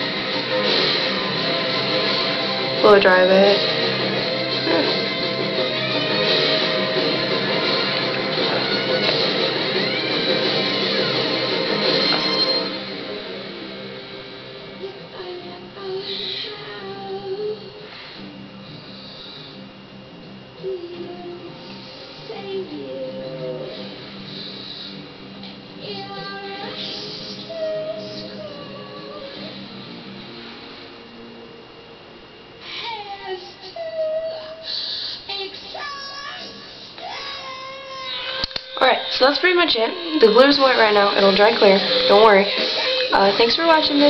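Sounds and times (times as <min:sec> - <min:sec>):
background music: 0:00.0 - 0:17.2, 0:39.2 - 0:44.0
person singing: 0:03.6 - 0:12.8, 0:14.8 - 0:17.9, 0:20.6 - 0:24.0, 0:25.8 - 0:29.6, 0:39.8 - 0:44.0.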